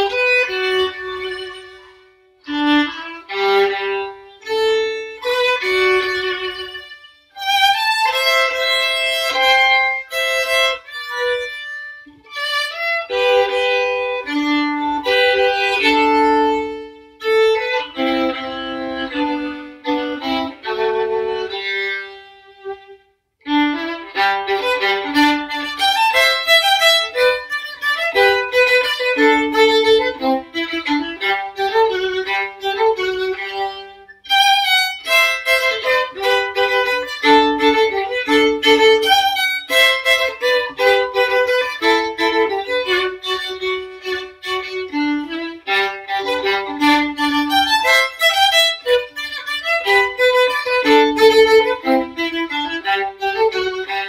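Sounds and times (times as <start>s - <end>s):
solo violin melody: 0.0s - 54.0s.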